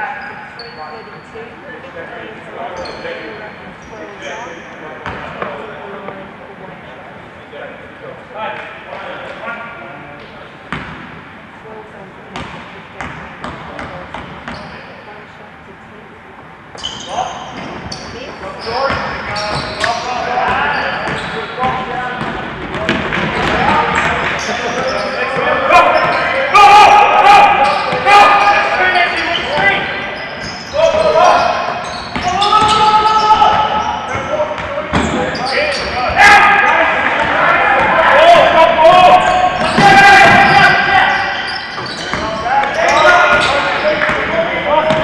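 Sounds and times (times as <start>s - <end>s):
basketball bouncing on court: 20.5s - 24.3s, 33.5s - 35.2s, 39.3s - 40.7s, 41.8s - 45.0s
players and crowd shouting: 22.8s - 45.0s.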